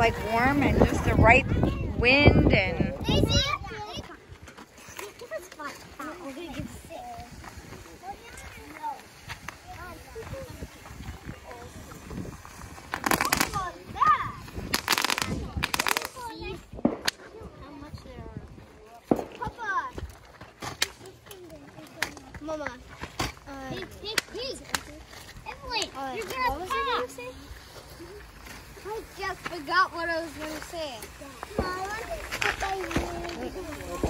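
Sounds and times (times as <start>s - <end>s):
children's voices: 0.0s - 34.0s
fireworks popping and cracking: 6.7s - 17.2s, 19.0s - 21.0s, 28.2s - 34.0s
fireworks hissing bursts: 7.3s - 16.4s, 30.7s - 34.0s.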